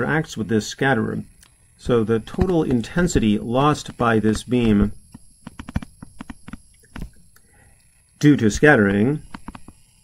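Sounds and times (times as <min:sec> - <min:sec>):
stylus tapping on a tablet: 0:05.4 - 0:07.1.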